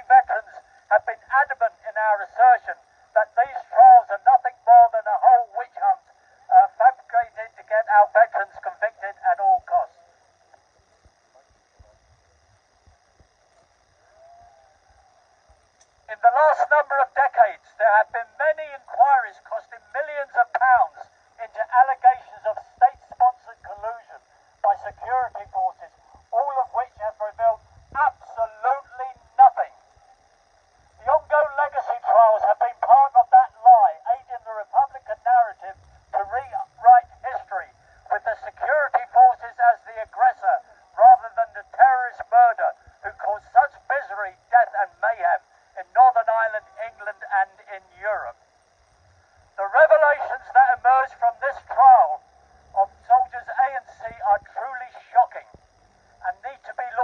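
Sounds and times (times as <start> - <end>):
man speaking through megaphone: 0.0 - 10.0, 16.1 - 29.8, 31.0 - 48.4, 49.6 - 55.6, 56.2 - 57.0.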